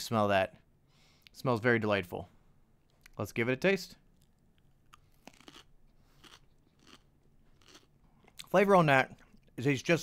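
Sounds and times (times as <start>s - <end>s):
person chewing chili: 4.1s - 9.6s.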